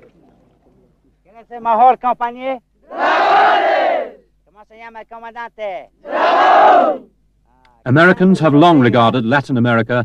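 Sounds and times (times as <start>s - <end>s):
soldiers shouting together: 2.9s - 4.2s, 6.0s - 7.1s.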